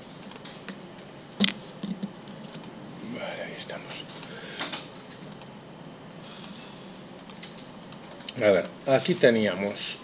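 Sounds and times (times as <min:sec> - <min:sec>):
low steady hiss: 0:00.8 - 0:10.0
man speaking: 0:03.0 - 0:04.2, 0:08.3 - 0:10.0
faint computer clicks: 0:07.2 - 0:09.4.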